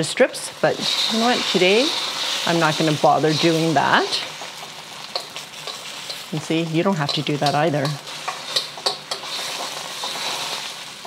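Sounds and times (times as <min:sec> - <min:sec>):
eggs sizzling in hot oil: 0:00.0 - 0:11.0
chopsticks stirring: 0:00.8 - 0:10.9.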